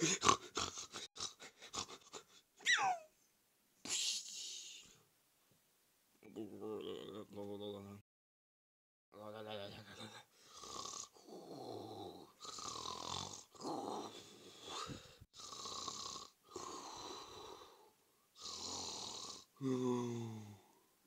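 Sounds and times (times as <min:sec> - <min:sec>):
cartoon duck snoring: 0:00.0 - 0:02.0, 0:10.5 - 0:17.8, 0:18.4 - 0:20.1.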